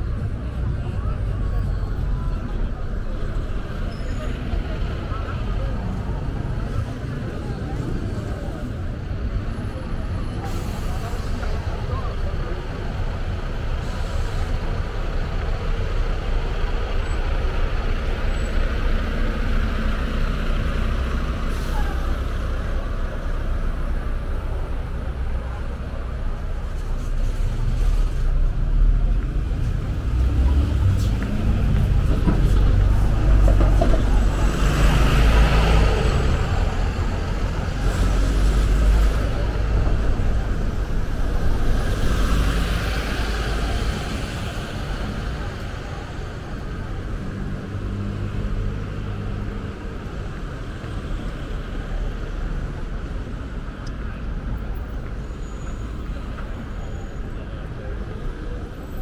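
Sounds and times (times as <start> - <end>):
people's voices: 0.0 - 59.0
vehicles passing: 0.0 - 59.0.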